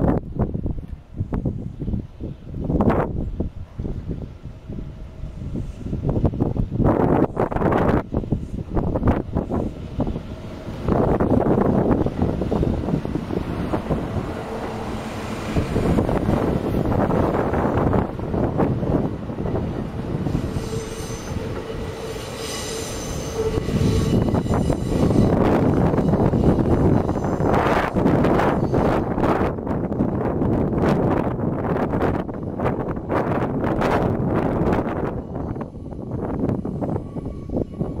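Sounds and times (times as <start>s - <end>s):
train passing: 0.0s - 38.0s
wind noise on microphone: 0.0s - 38.0s
wheels squealing on track: 20.3s - 27.8s.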